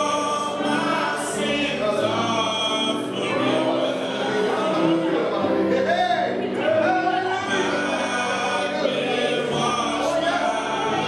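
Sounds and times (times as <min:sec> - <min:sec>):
piano accompaniment: 0:00.0 - 0:11.0
voices singing worship song: 0:00.0 - 0:11.0.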